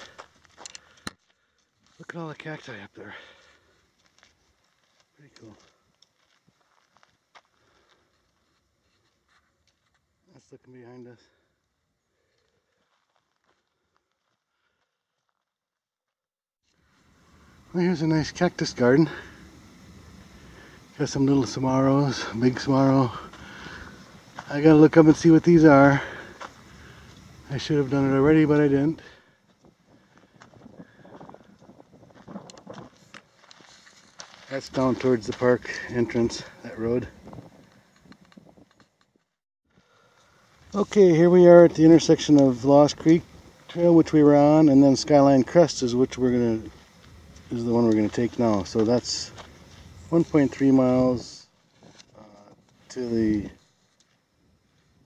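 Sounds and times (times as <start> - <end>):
footsteps on gravel: 0.0 - 2.8, 3.8 - 10.1, 12.3 - 15.4, 23.0 - 25.3, 25.9 - 27.2, 29.4 - 38.7, 46.6 - 50.7.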